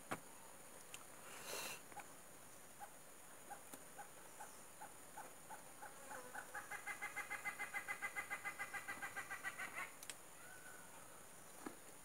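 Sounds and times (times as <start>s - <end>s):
bird calling: 2.8s - 11.2s.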